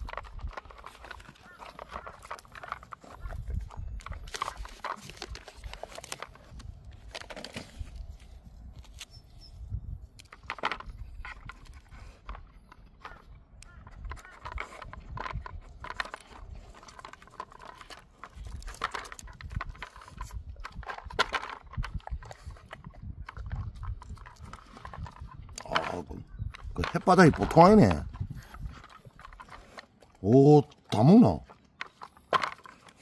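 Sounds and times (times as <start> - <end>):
plastic toy clicking on concrete: 0.0 - 7.4, 10.1 - 30.0, 30.7 - 33.0.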